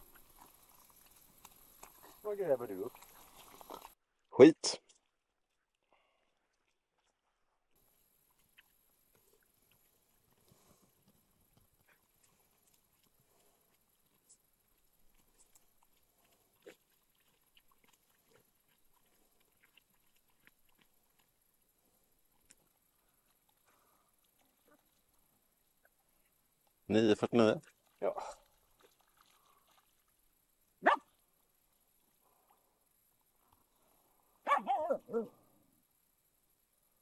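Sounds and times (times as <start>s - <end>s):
dog digging in mud: 0.0s - 4.0s, 8.4s - 21.4s.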